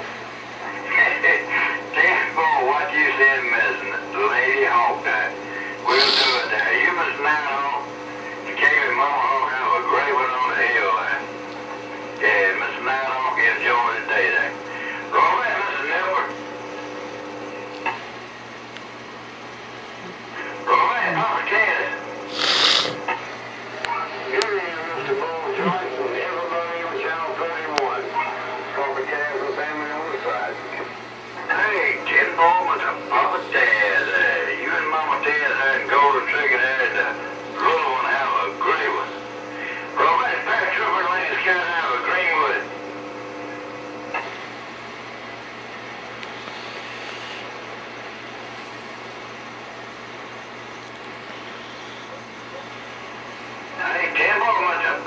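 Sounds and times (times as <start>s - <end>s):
background hiss and hum: 0.0s - 55.0s
voices over radio speaker: 0.6s - 18.1s, 20.0s - 44.5s, 51.3s - 55.0s
sharp burst of radio noise: 5.2s - 7.4s, 20.4s - 23.2s.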